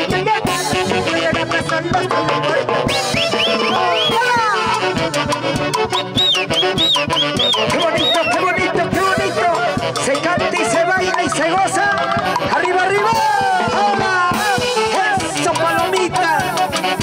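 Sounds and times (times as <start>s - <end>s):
drum kit and percussion beat: 0.0s - 17.0s
saxophones playing melody: 0.0s - 17.0s.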